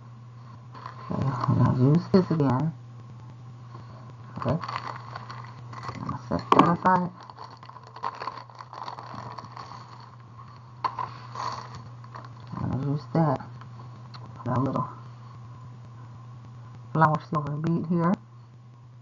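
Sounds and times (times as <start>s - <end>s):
steady low hum: 0.0s - 19.0s
plastic bag crinkling: 0.8s - 1.8s, 4.3s - 12.9s.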